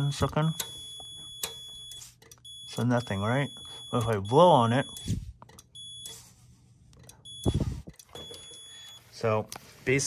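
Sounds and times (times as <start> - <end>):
multimeter continuity beep: 0.0 - 6.4, 7.0 - 9.2.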